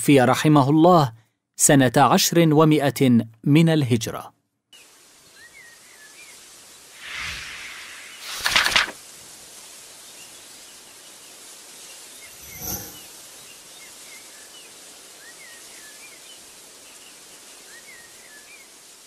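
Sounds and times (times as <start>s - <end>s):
steady hiss: 4.8s - 19.0s.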